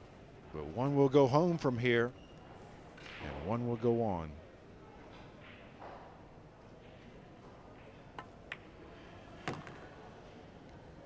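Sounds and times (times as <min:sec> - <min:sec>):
pool balls clicking: 0:08.1 - 0:08.8
ball dropping into pocket: 0:08.2 - 0:08.8, 0:09.4 - 0:10.0.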